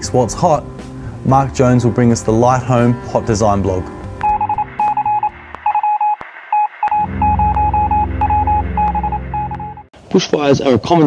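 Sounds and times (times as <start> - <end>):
short electronic beeps: 4.2 - 9.9.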